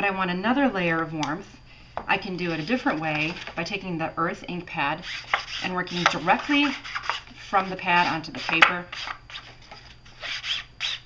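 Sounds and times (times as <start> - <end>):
ink pad scraping on paper card: 2.4 - 3.6, 5.0 - 11.0.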